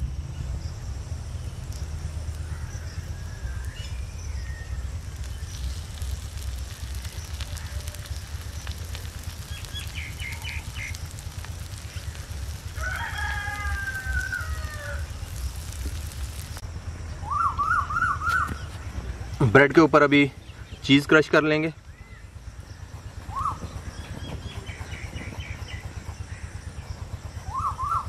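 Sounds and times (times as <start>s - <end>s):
low rumble: 0.0s - 28.0s
rooster crowing: 12.5s - 15.5s.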